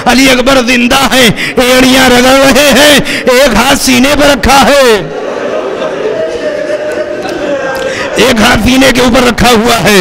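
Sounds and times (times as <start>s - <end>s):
murmur of crying voices: 5.1s - 8.4s
people weeping aloud: 5.1s - 8.6s.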